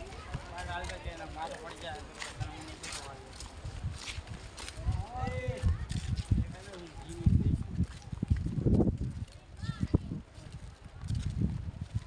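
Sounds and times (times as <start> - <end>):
voices nearby: 0.0 - 11.9
footsteps on concrete: 0.0 - 12.0
wind rumbling on microphone: 0.0 - 12.0.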